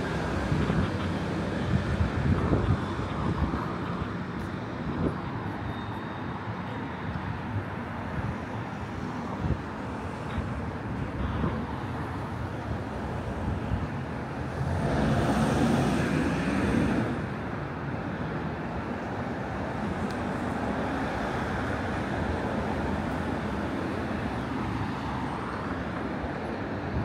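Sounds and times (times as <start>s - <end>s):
city street traffic: 0.0s - 27.0s
vehicle passing close by: 14.5s - 17.3s.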